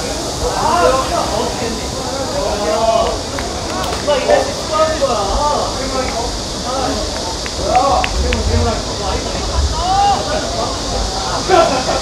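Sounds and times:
high hiss: 0:00.0 - 0:12.0
wind rumble on microphone: 0:05.9 - 0:11.4
loud shout: 0:07.6 - 0:12.0.

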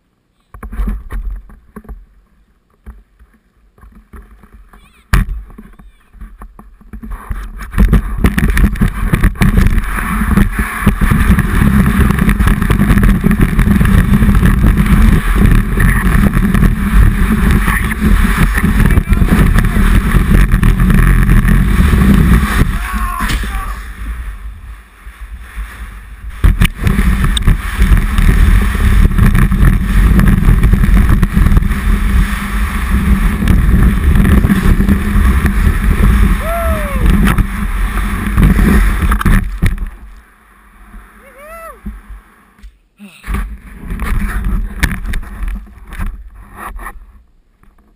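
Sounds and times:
board scraping over snow: 0:00.6 - 0:47.9.

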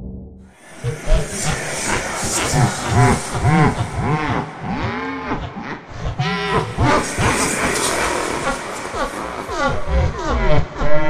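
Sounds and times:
deep distorted laugh-like voice: 0:00.6 - 0:11.0.

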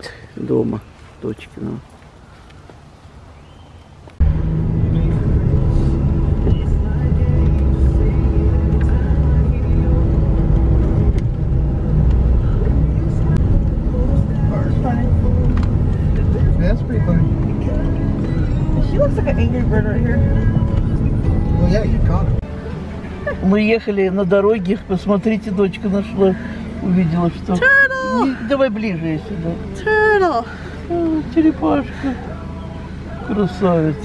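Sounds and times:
car engine and road noise: 0:00.0 - 0:34.0
music: 0:04.3 - 0:23.8.

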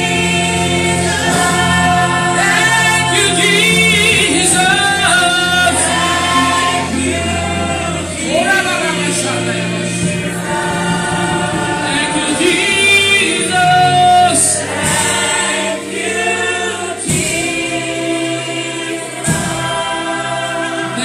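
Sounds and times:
congregation singing a gospel song: 0:00.0 - 0:21.0.

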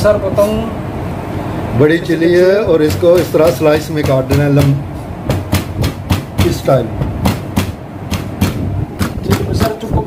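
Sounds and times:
knife chopping on cutting board: 0:02.8 - 0:09.8.

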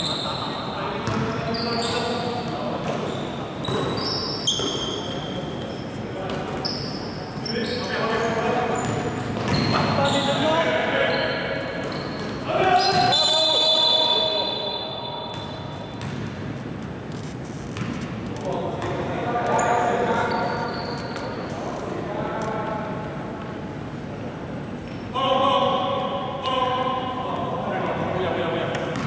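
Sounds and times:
sneaker squeaks: 0:00.0 - 0:21.8
players shouting: 0:12.4 - 0:15.4
referee whistle blast: 0:12.8 - 0:15.6
basketball bouncing on hardwood: 0:16.0 - 0:16.3.

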